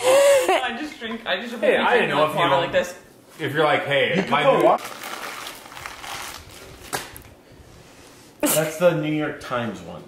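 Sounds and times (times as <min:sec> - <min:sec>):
paper rustling: 0:04.7 - 0:07.3.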